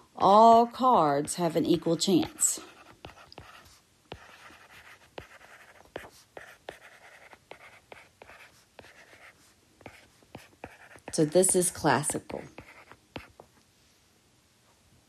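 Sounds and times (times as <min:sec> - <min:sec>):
stylus tapping and scratching: 0:02.2 - 0:13.6.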